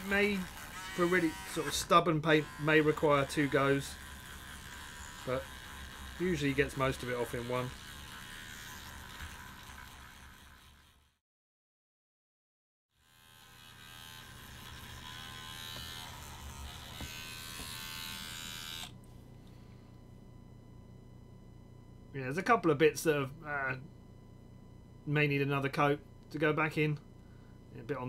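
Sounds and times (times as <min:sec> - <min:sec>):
electric toothbrush buzzing: 0:00.0 - 0:11.2, 0:12.9 - 0:19.0
faint steady hum: 0:13.0 - 0:28.0.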